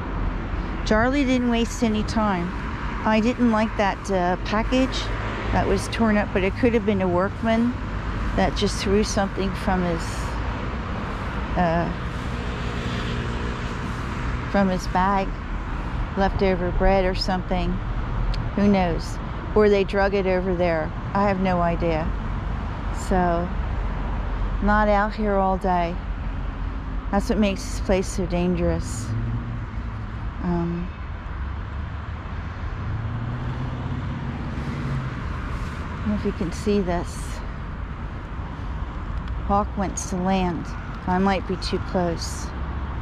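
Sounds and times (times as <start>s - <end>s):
distant road traffic rumble: 0.0s - 43.0s
faint engine hum: 0.0s - 43.0s.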